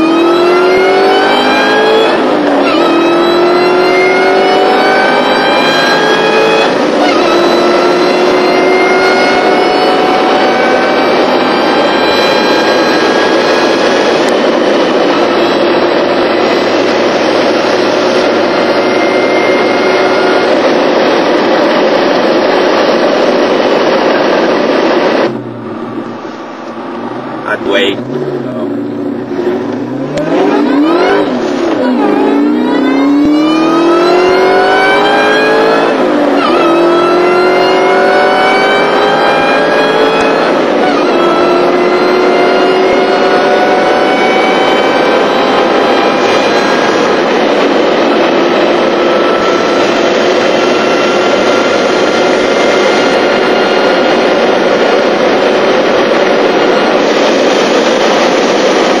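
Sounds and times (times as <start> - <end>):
car engine at full throttle: 0.0 - 59.0
gear changes: 0.0 - 59.0
supercharger whine: 0.0 - 59.0.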